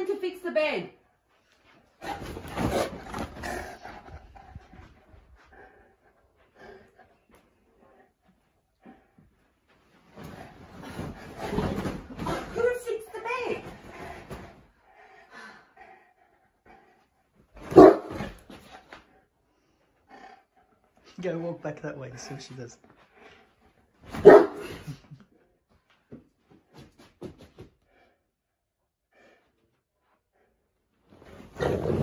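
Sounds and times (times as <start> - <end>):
dog growling: 2.0 - 4.8, 31.5 - 32.0
dog barking: 17.7 - 18.3, 24.2 - 24.8.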